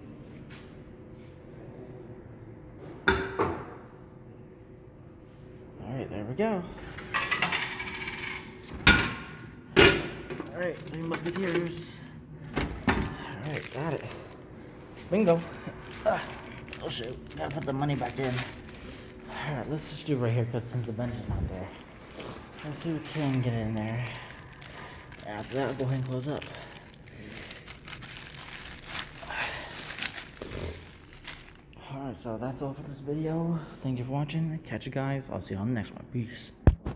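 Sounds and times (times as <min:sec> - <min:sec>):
plastic bag crinkling: 0:10.4 - 0:12.2, 0:12.8 - 0:31.6.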